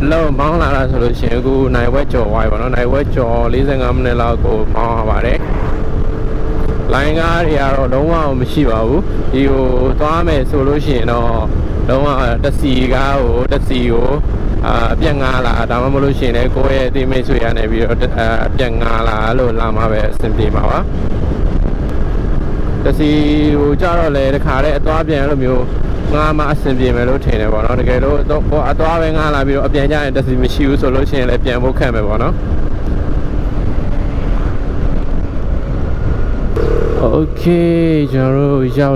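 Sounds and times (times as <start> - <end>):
scooter engine and road noise: 0.0 - 38.9
wind rumble on microphone: 0.0 - 38.9
motor scooter engine running: 36.6 - 37.9.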